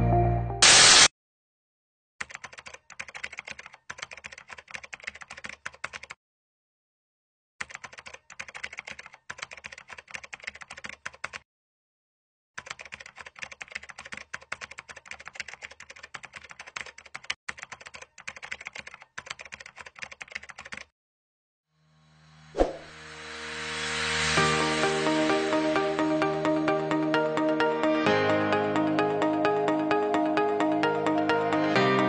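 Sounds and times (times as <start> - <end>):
keyboard typing clicks: 2.2 - 6.2, 7.6 - 11.4, 12.6 - 20.9
rising swell and hit: 22.6 - 25.2.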